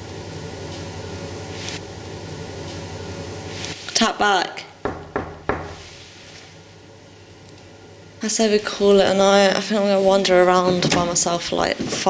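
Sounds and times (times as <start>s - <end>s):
low room hum: 0.0s - 12.0s
knuckles knocking on cupboard door: 4.8s - 5.8s.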